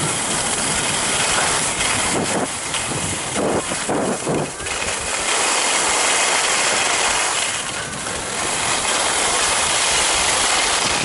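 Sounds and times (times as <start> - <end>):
skis scraping over snow: 0.0 - 11.0
wind on microphone: 0.0 - 11.0.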